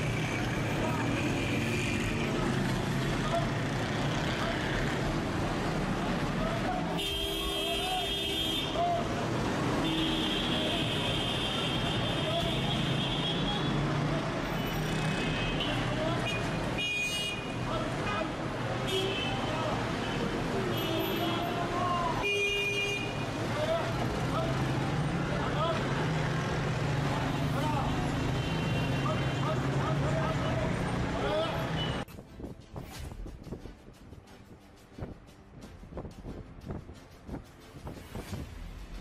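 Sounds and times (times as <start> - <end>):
traffic noise: 0.0 - 39.0.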